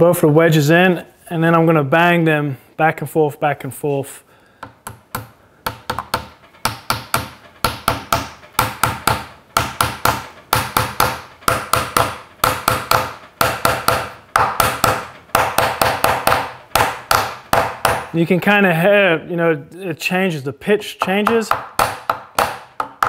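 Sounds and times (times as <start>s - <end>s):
hammer tapping wooden wedges: 4.6s - 18.2s, 20.9s - 23.0s.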